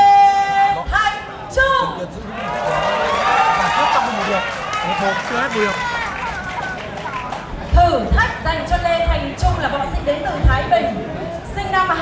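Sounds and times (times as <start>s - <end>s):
spectators shouting: 2.4s - 7.6s.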